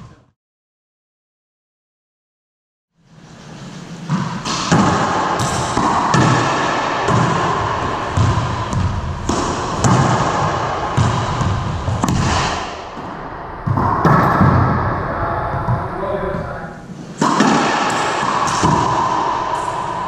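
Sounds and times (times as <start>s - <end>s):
racquetball hits echoing: 4.0s - 16.5s, 17.1s - 20.0s.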